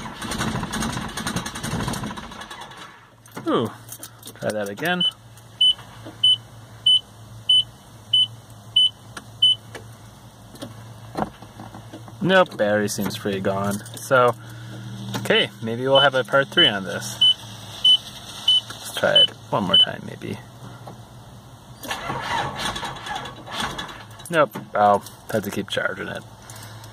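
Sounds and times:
starter motor cranking engine: 0:00.0 - 0:03.5, 0:21.8 - 0:24.2
dashboard warning chime beeping: 0:05.0 - 0:09.6, 0:15.2 - 0:20.0.

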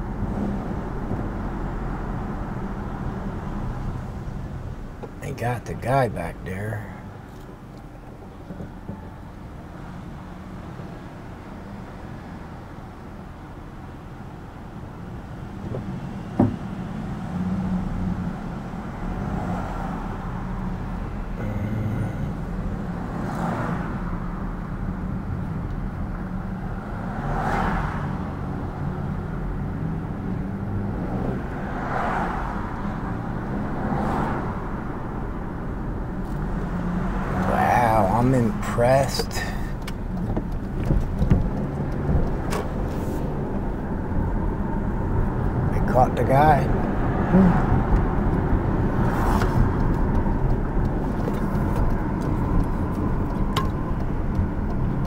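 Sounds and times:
car engine and road rumble: 0:00.0 - 0:55.0.

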